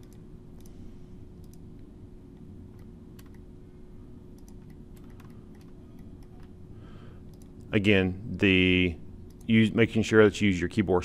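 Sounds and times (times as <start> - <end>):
low hum: 0.0 - 11.0
keyboard and mouse clicking: 1.4 - 1.8, 2.7 - 3.5, 4.3 - 6.6, 7.3 - 7.7.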